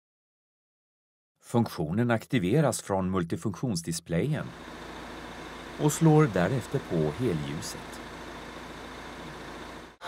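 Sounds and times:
faint low hum with hiss: 5.3 - 10.0.

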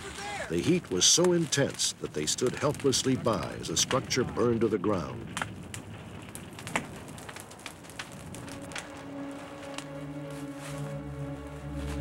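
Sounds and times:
fire crackling and popping: 0.0 - 12.0
low sustained music notes: 8.0 - 12.0.

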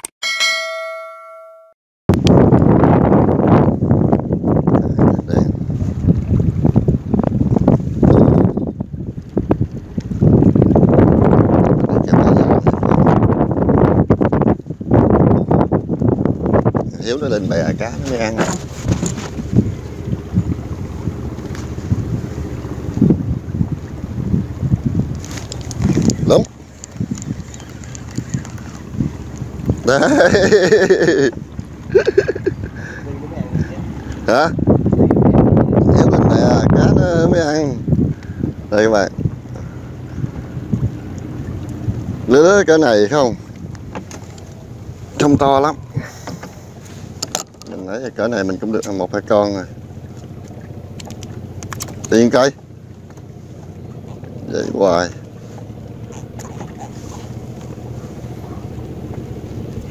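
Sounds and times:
bell-like notification chime: 0.2 - 1.8
wind buffeting microphone: 2.1 - 59.9.

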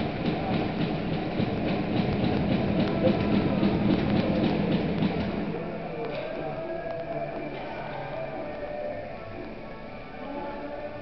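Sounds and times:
ice rink rumble: 0.0 - 8.8
faint music: 0.0 - 11.0.

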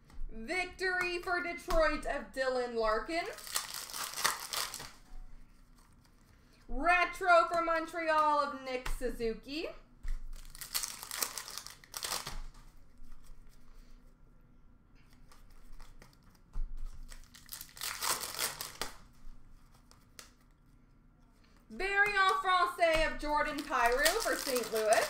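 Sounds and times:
foil wrappers crinkling: 3.1 - 6.4, 10.1 - 13.5, 15.3 - 19.1, 22.1 - 25.0
cards rustling: 3.2 - 6.6, 10.1 - 13.9, 15.1 - 20.7, 21.4 - 25.0.

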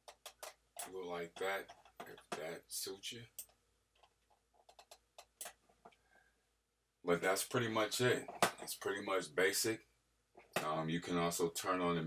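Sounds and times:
computer mouse clicks: 3.4 - 6.0.

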